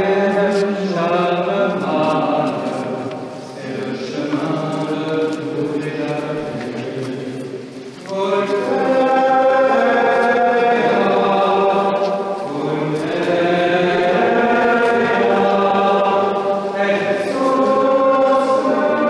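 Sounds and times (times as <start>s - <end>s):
group singing a slow hymn: 0.0s - 19.0s.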